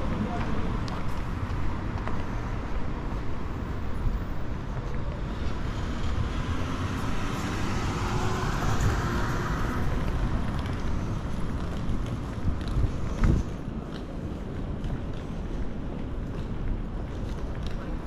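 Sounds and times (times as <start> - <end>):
low traffic rumble: 0.0 - 18.0
car driving past: 5.6 - 10.0.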